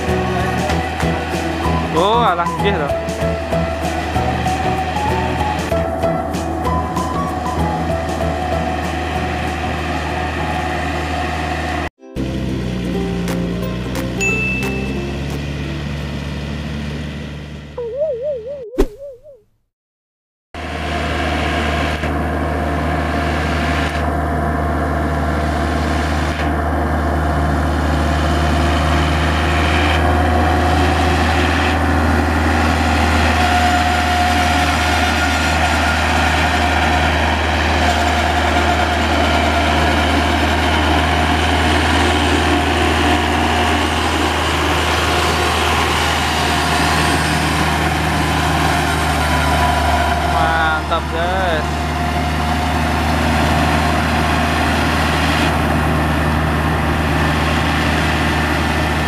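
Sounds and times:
tractor diesel engine under load: 0.0s - 17.8s, 20.6s - 59.0s.

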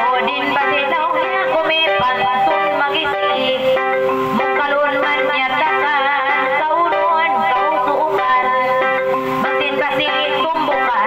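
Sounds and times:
woman chanting into a microphone: 0.0s - 3.8s, 4.6s - 8.8s, 9.4s - 11.0s
arranger keyboard accompaniment: 0.0s - 11.0s.

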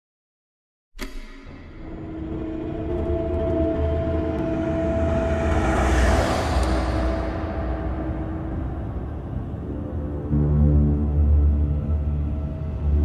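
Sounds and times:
low rumbling horror drone: 1.0s - 13.0s.

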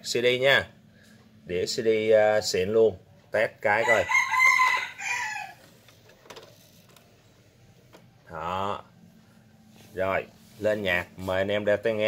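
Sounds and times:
rooster crowing: 3.7s - 5.6s.

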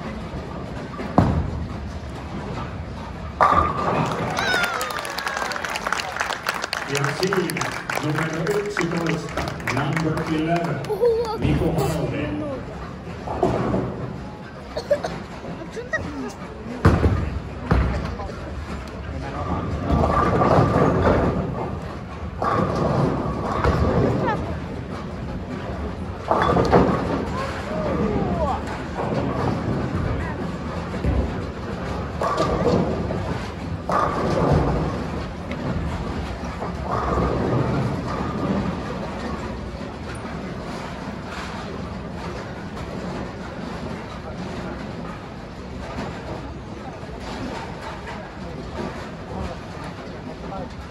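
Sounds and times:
rumble of bowling balls and pins: 0.0s - 50.9s
players talking: 4.0s - 13.6s, 14.5s - 20.1s.

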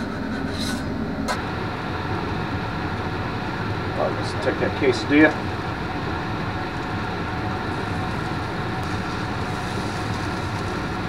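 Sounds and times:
exhaust fan humming: 0.0s - 11.0s.

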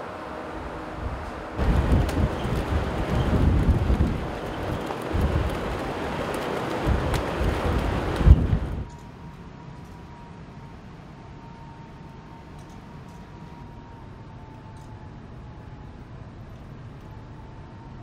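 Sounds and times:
steady hum with high tone: 0.0s - 18.0s
wind buffeting microphone: 0.6s - 9.3s.

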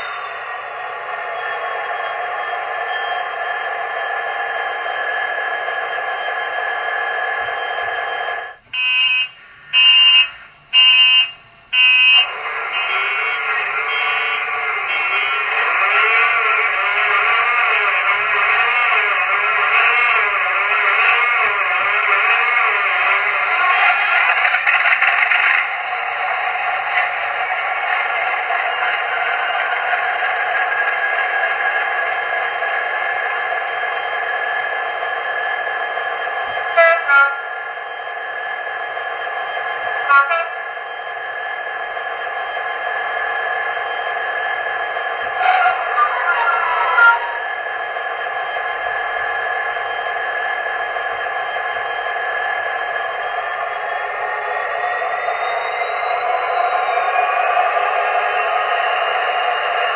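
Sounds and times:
diesel engine starting and idling: 0.0s - 36.8s.

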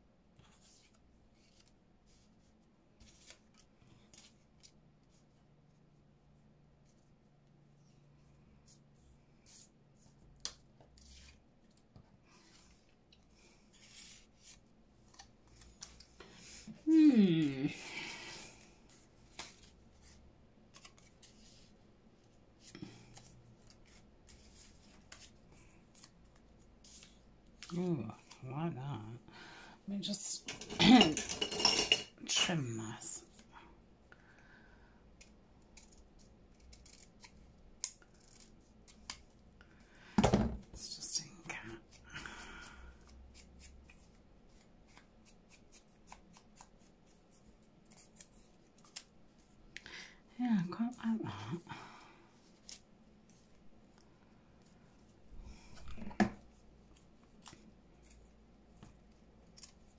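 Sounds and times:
scissors snipping paper: 35.2s - 39.2s.

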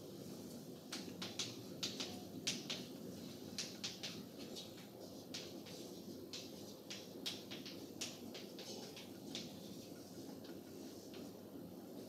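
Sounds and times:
chalk writing on blackboard: 0.3s - 12.0s.

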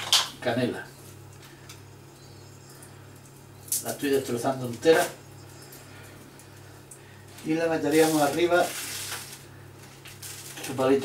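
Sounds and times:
man speaking: 7.4s - 8.8s.

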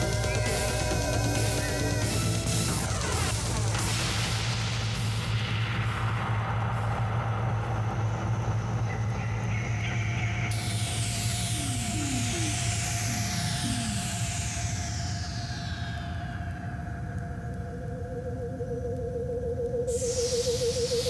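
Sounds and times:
low electronic drone: 0.0s - 21.0s.

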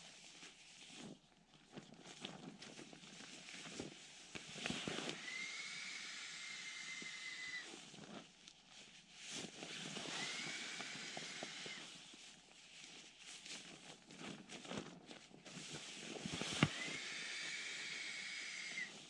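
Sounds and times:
fabric bag crinkling: 0.1s - 5.4s, 7.4s - 19.0s
thin steady whistle: 5.1s - 7.8s, 16.5s - 19.0s.

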